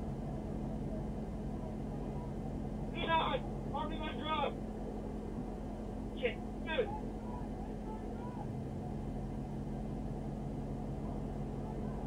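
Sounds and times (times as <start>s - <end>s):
car engine idling hum: 0.0s - 12.0s
indistinct speech: 2.9s - 4.6s, 6.2s - 8.6s.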